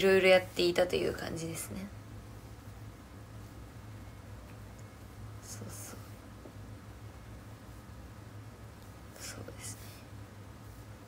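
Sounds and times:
woman whispering: 5.4 - 6.2, 9.1 - 10.1.

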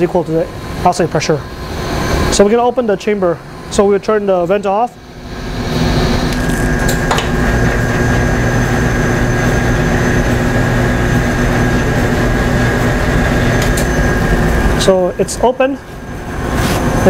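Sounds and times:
motor drone with high whine: 0.0 - 17.0.

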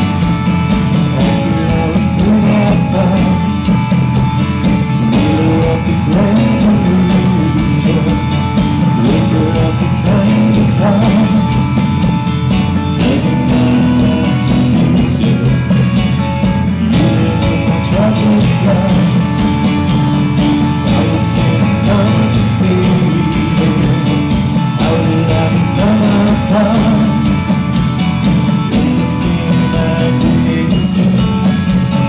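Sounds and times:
keyboard accompaniment: 0.0 - 32.0
man singing: 0.0 - 32.0.

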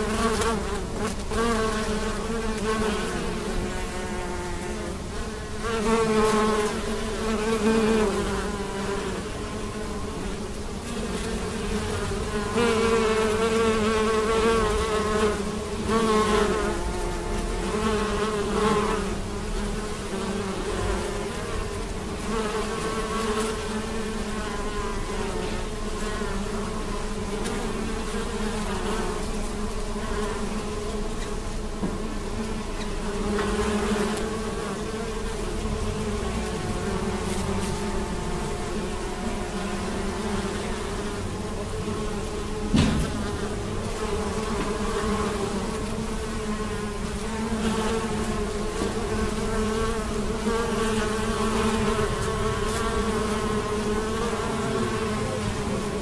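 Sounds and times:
bees buzzing: 0.0 - 56.0.

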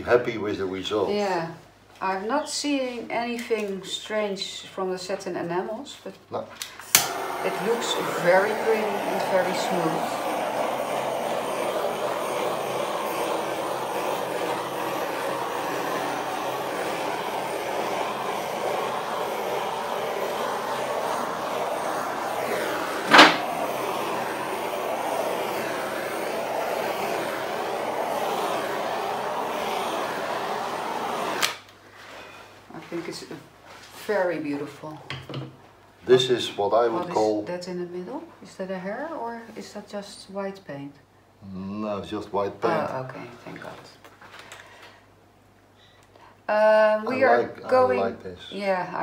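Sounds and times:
torch flame rushing: 6.8 - 31.7.

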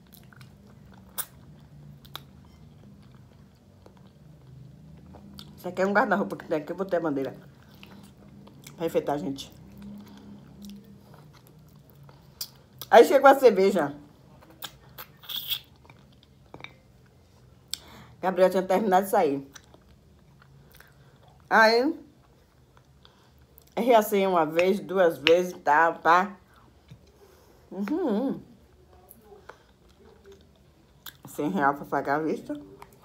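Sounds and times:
person chewing crunchy food: 0.0 - 5.6, 7.4 - 8.8, 9.5 - 12.9, 14.4 - 17.9, 19.5 - 21.5.

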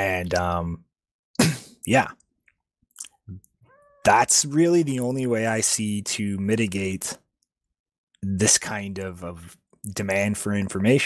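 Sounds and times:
person speaking: 0.0 - 0.8, 3.0 - 7.2.

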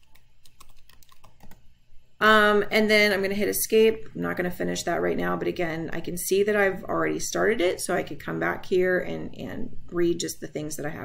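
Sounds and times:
typing on computer keyboard: 0.0 - 1.6.

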